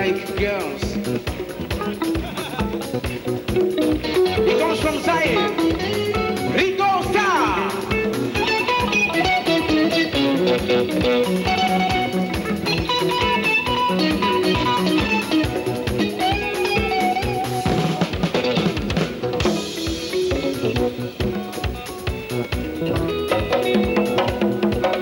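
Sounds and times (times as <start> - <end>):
live band playing dance music: 0.0 - 25.0.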